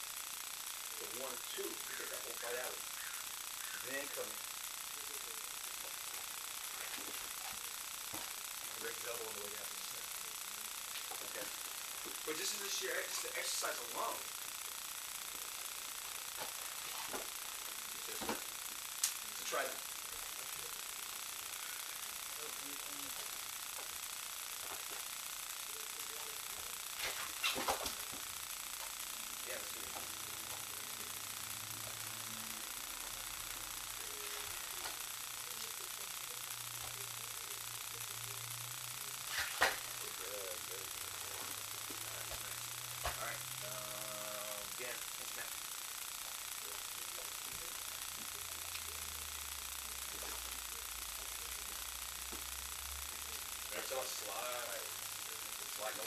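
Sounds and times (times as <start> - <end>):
steady hiss: 0.0 - 56.0
quiet low talk: 33.8 - 45.6.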